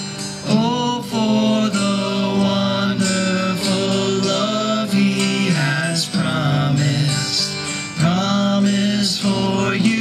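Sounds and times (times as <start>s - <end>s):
acoustic guitars playing: 0.0s - 10.0s
man singing long notes: 0.4s - 10.0s.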